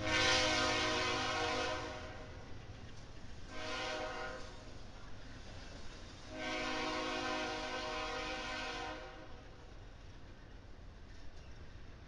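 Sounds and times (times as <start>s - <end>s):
locomotive horn blasts: 0.0s - 2.3s, 3.5s - 4.5s, 6.3s - 9.3s
freight train cars rumbling: 0.0s - 12.0s.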